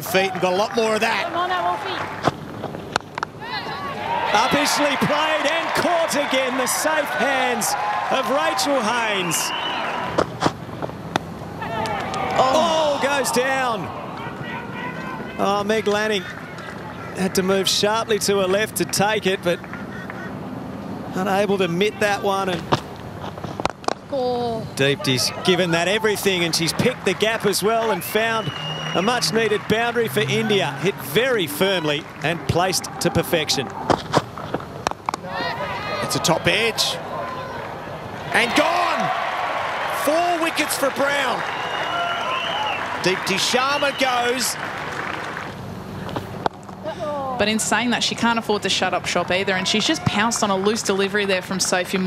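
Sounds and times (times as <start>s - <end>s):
voices calling out: 3.3s - 10.3s, 11.2s - 20.6s, 24.1s - 47.6s.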